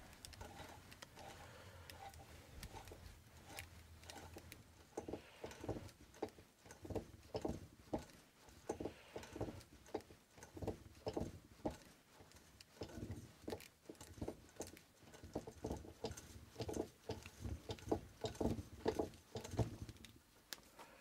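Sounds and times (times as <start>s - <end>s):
wire rubbing while winding: 0.0s - 20.2s.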